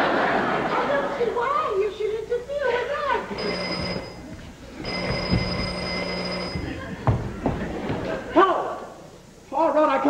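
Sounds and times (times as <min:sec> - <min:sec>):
telephone ringing: 0:03.2 - 0:06.9.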